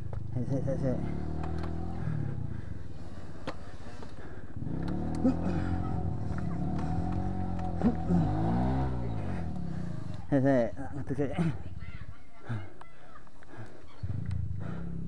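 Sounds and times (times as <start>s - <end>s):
dirt bike engine revving: 0.5s - 10.5s.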